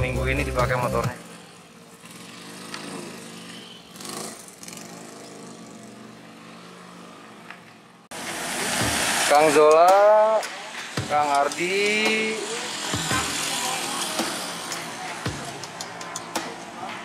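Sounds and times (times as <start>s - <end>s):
outdoor noise: 0.0s - 17.0s
scooter engine running: 1.0s - 9.0s, 10.4s - 16.4s.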